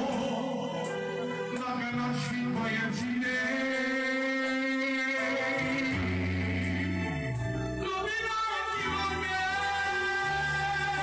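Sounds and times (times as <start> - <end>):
band music: 0.0 - 11.0
low bass line: 0.0 - 11.0
man singing long notes: 0.0 - 11.0.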